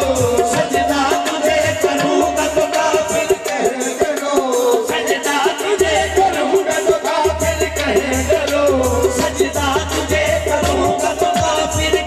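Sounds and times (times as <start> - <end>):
harmonium melody: 0.0 - 4.2
hand drum rhythm: 0.0 - 12.0.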